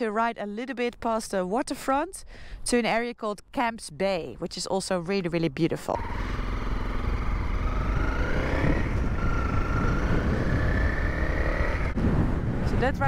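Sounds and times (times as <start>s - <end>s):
motorcycle engine accelerating: 6.0s - 13.0s.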